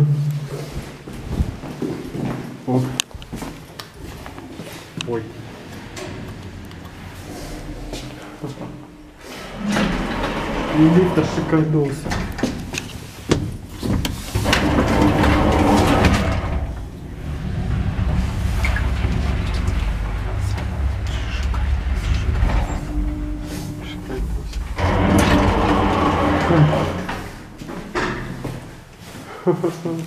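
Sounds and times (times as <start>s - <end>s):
lift car humming: 5.4s - 12.5s, 14.2s - 29.0s
sliding lift doors rattling: 5.4s - 29.0s.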